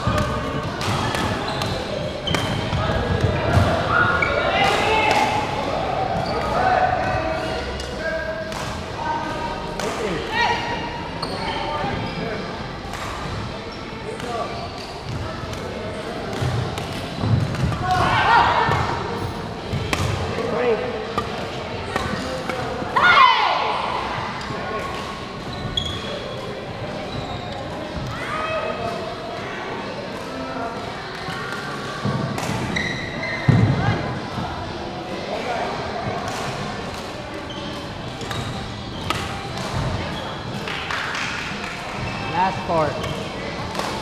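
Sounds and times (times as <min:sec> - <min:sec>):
background chatter: 0:00.0 - 0:44.0
players' voices: 0:00.0 - 0:44.0
shoe squeaks: 0:11.1 - 0:12.3, 0:13.7 - 0:15.2, 0:25.4 - 0:27.7, 0:32.7 - 0:33.5, 0:37.4 - 0:39.5
rackets striking shuttlecocks: 0:38.2 - 0:40.6.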